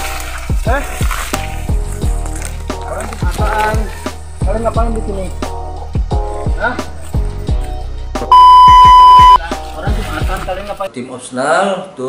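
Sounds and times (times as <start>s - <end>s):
hip hop music with bass drum: 4.0s - 9.6s
censor bleep: 8.3s - 9.4s.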